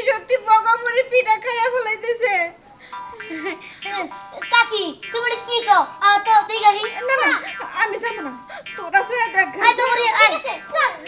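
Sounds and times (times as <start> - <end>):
child talking: 0.0 - 2.6, 3.2 - 11.0
high-pitched voices talking fast: 0.0 - 11.0.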